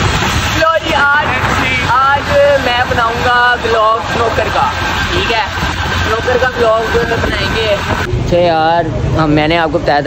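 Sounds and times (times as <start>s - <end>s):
wind noise on microphone: 0.0s - 9.2s.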